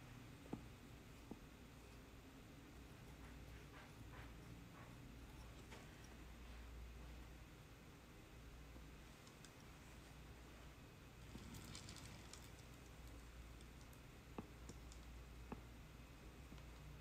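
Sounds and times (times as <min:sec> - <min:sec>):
clay pot clicks and scraping: 0:00.4 - 0:06.6, 0:11.2 - 0:15.7.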